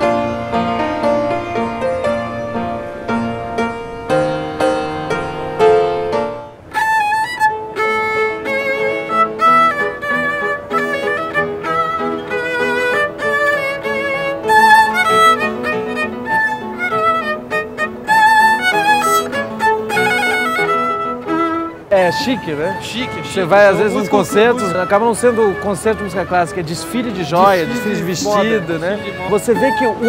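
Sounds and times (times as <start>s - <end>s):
violin playing classical piece: 0.0s - 30.0s.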